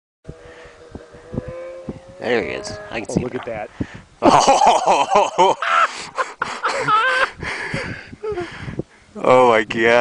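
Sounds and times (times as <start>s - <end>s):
snowmobile engine droning: 0.3s - 3.3s
short low thumps: 0.3s - 4.1s.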